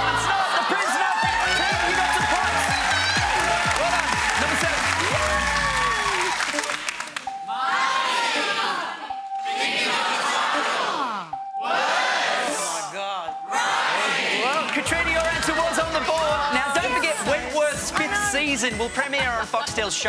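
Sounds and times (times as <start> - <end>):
audience cheering and whooping: 0.0 - 6.9
audience applause: 0.0 - 7.3, 14.4 - 16.9.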